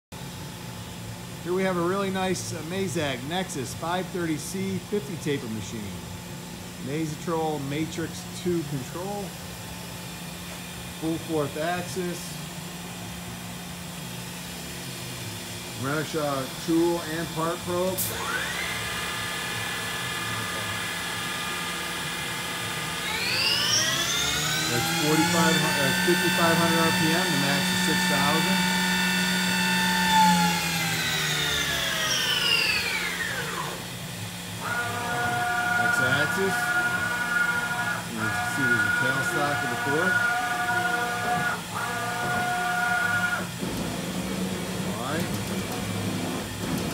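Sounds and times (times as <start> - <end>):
machine mechanical hum: 0.2 - 46.9.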